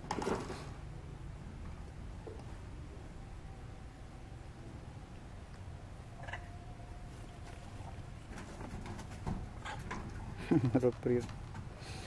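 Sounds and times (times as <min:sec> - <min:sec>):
faint animal calls: 0:06.0 - 0:08.2.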